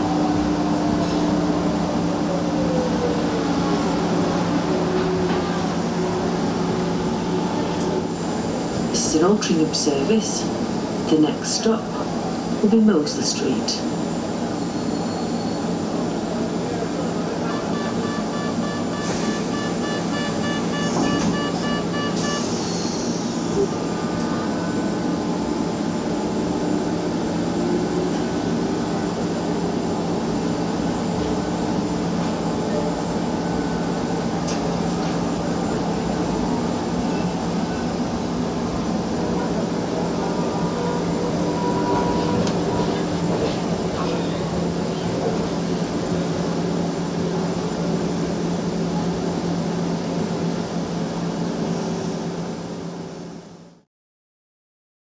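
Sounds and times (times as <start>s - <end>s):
tram rumbling: 0.0s - 53.6s
rapid repeating beep: 17.7s - 22.4s.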